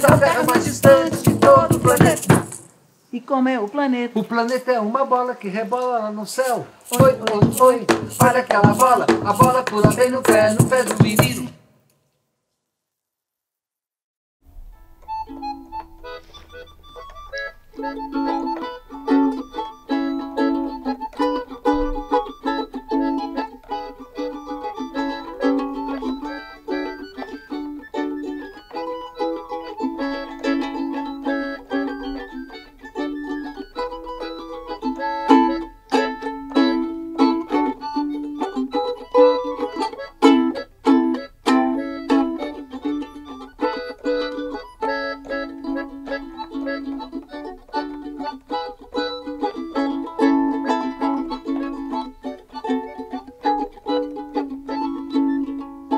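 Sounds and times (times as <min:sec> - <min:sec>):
plucked ukulele: 0:00.0 - 0:02.7, 0:06.4 - 0:11.5, 0:14.5 - 0:55.9
electronic keyboard chords: 0:14.6 - 0:23.6.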